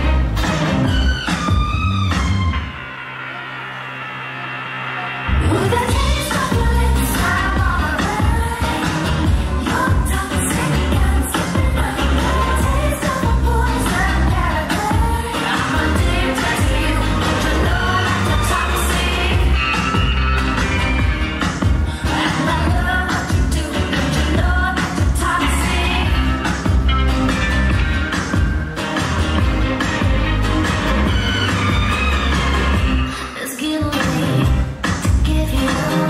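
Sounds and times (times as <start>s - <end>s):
pop dance music with singing: 0.0s - 36.0s.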